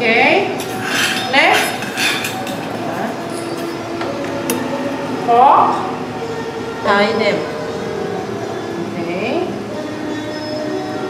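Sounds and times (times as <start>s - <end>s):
steel tray and utensils clinking: 0.5s - 4.6s.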